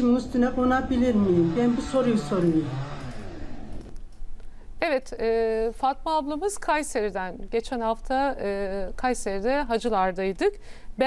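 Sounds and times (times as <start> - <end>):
faint background hiss: 3.2 - 11.0
woman speaking: 4.8 - 10.6.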